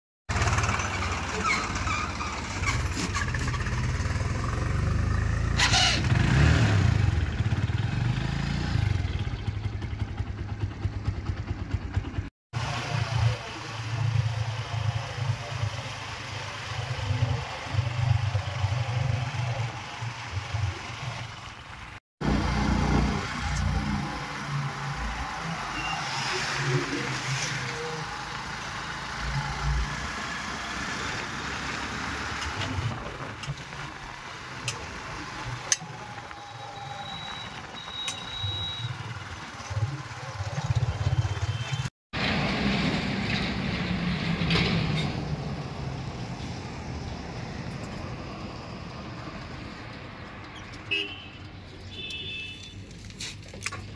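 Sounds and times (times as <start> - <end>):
tractor diesel engine passing: 0.3 - 51.9
motorcycle riding along road: 0.3 - 53.9
motorcycle engine idling: 7.1 - 12.3.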